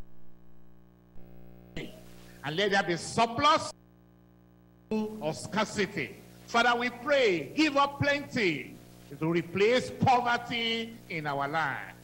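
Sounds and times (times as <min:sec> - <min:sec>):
low electrical hum: 0:00.0 - 0:12.0
man praying: 0:01.8 - 0:03.8, 0:04.9 - 0:12.0.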